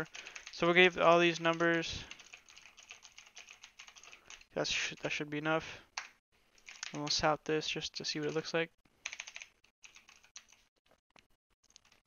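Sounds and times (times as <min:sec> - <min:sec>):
typing on computer keyboard: 0:00.0 - 0:00.6, 0:01.4 - 0:04.5, 0:06.0 - 0:07.2, 0:08.2 - 0:10.6.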